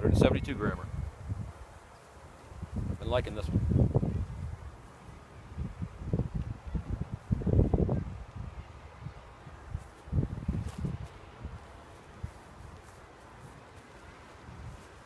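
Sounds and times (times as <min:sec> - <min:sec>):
wind buffeting microphone: 0:00.0 - 0:01.8, 0:02.5 - 0:15.0
faint outdoor hiss: 0:00.0 - 0:15.0.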